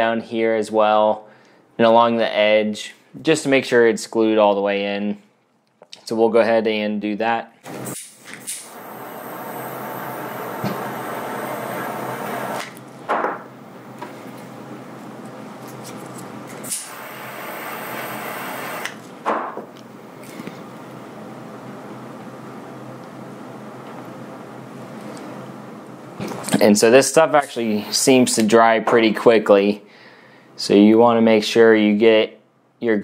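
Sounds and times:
butane torch hissing: 8.0s - 12.8s, 16.6s - 19.0s.

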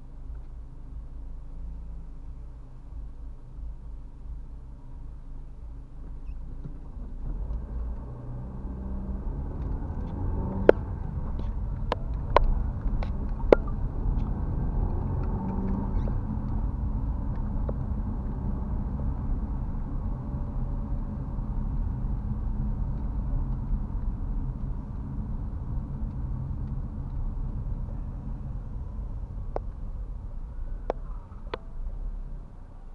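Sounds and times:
car engine and tyre rumble: 0.0s - 32.9s.

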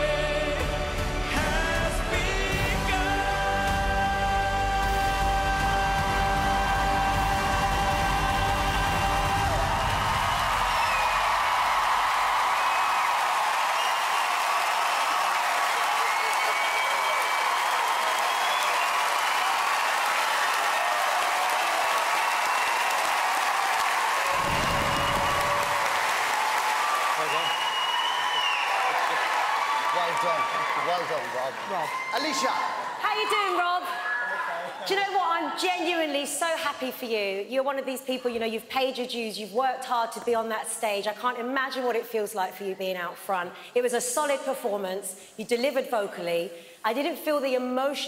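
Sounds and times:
audience applauding and cheering: 0.0s - 35.3s.

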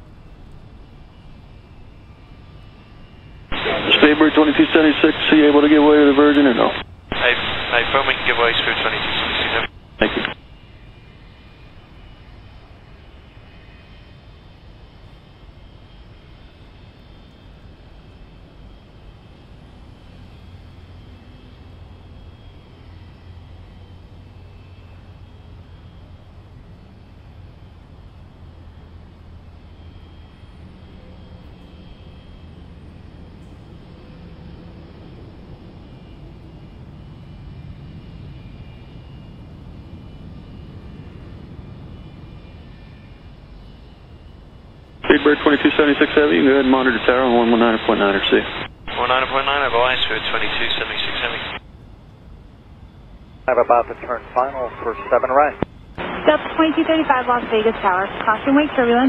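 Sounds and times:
high-pitched engine whines: 0.0s - 59.0s
jet engines rumbling: 1.0s - 10.4s, 33.6s - 59.0s.

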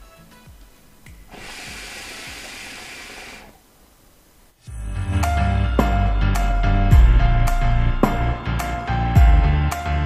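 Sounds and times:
hookah bubbling hiss: 1.1s - 3.9s.

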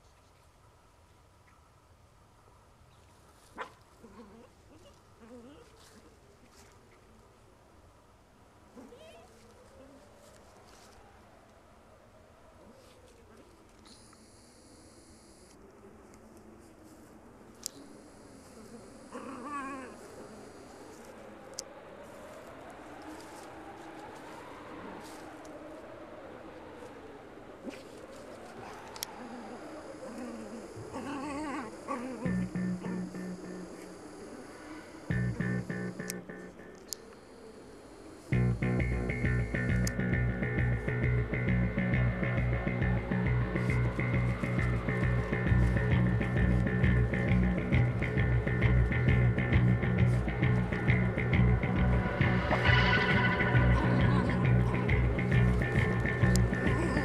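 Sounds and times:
faint background noise: 0.0s - 57.0s
dog whining: 19.1s - 20.3s, 29.2s - 33.8s.

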